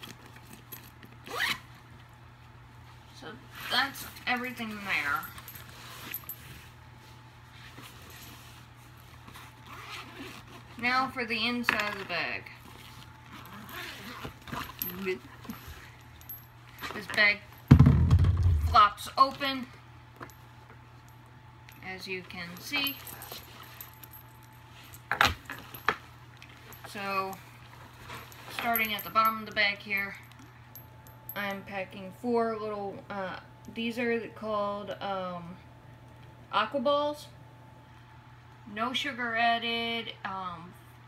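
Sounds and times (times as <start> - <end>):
metal zipper pulls jingling: 0.0 - 1.8, 3.5 - 6.7, 7.9 - 11.0, 11.8 - 17.4, 21.8 - 31.2
steady low hum: 0.0 - 41.0
fabric bag being handled: 3.7 - 11.1.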